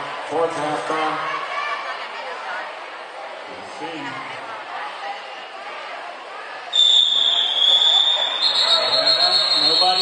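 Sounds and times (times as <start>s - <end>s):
crowd voices: 0.0s - 10.0s
long shrill signal tone: 6.8s - 10.0s.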